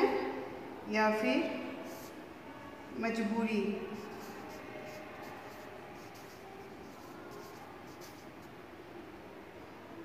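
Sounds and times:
marker writing on whiteboard: 1.8 - 2.3, 3.8 - 8.6.

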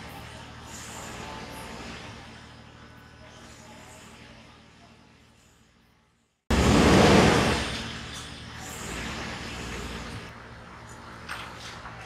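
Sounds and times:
road traffic noise: 6.5 - 12.0.

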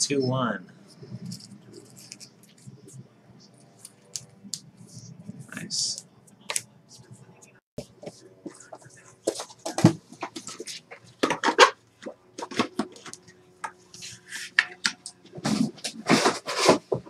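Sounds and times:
packaging rustling and scraping: 15.3 - 17.0.

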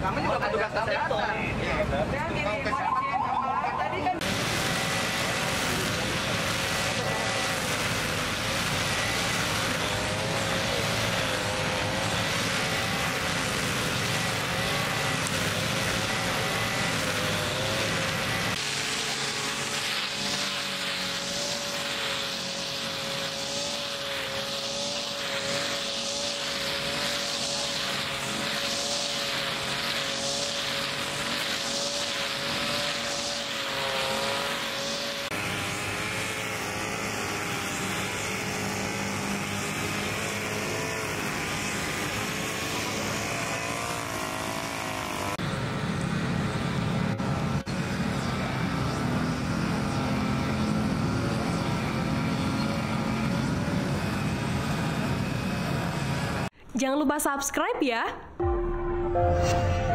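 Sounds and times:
trimmer head swishing through grass: 4.2 - 45.4
brush cutter engine running: 4.2 - 56.5.

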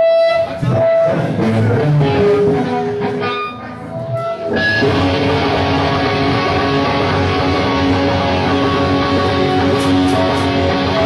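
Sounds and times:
low electric bass notes: 0.0 - 11.0.

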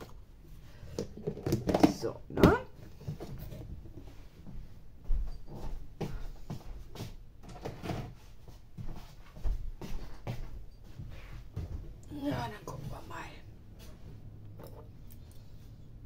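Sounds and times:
plastic box knocks and clunks: 0.9 - 2.6.

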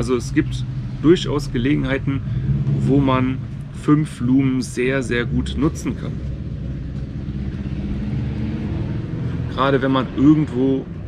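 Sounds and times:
motorcycle engine running: 5.2 - 9.2.

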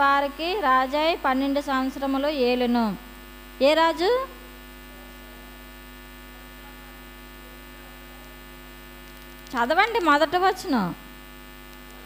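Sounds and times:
woman speaking: 0.0 - 3.0, 3.6 - 4.4, 9.5 - 11.0
electrical mains hum: 0.0 - 12.0.

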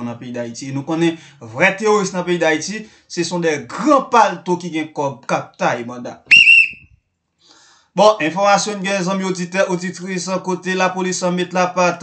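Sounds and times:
man whistling: 6.3 - 7.0.

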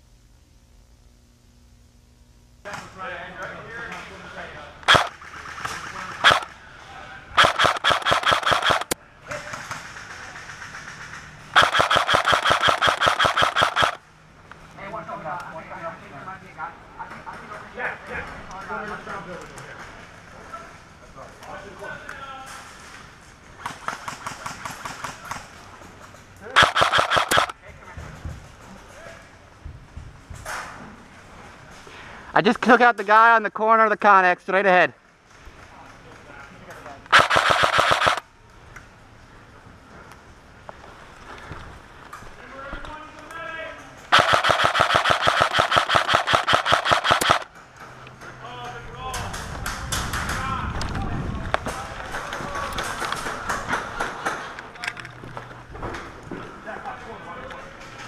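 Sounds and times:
airsoft guns full-auto bursts: 4.8 - 6.6, 7.4 - 14.1, 26.5 - 27.6, 37.1 - 38.2, 44.1 - 47.5
single sharp shots: 4.9 - 5.2, 6.2 - 6.5, 7.4 - 9.0, 11.6 - 14.0, 26.5 - 27.6, 37.1 - 38.2, 44.1 - 47.5.

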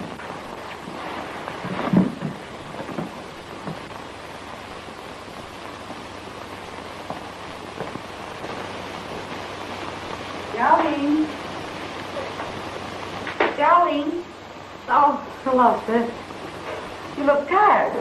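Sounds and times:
film soundtrack hiss: 0.0 - 18.0.

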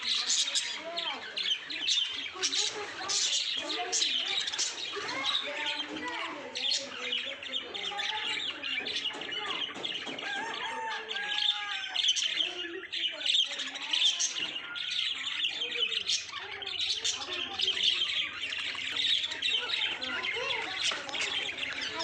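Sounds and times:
budgerigars chattering and chirping: 0.0 - 22.0.

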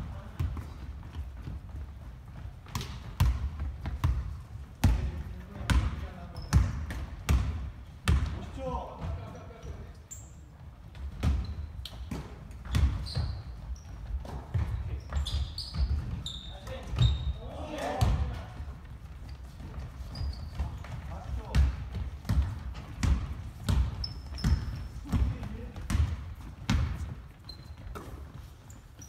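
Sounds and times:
sneaker squeaks: 0.1 - 7.1, 8.2 - 29.0
basketball bouncing on hardwood: 2.6 - 8.4, 10.9 - 17.3, 20.5 - 27.3.

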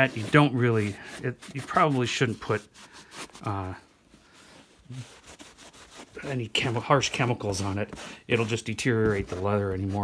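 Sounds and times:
rubbing leather shoe with cloth: 0.0 - 10.0.

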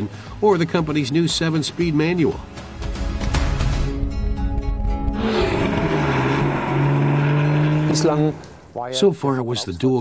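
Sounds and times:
background music: 0.0 - 10.0
car engine running: 5.2 - 8.5.

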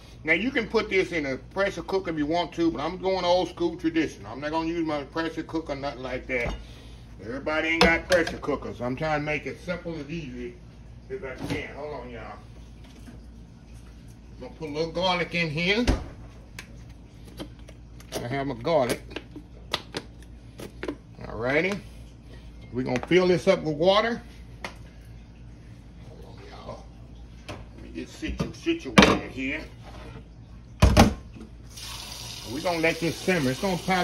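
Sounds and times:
low steady hum: 0.0 - 34.0
tap water running: 26.2 - 34.0.

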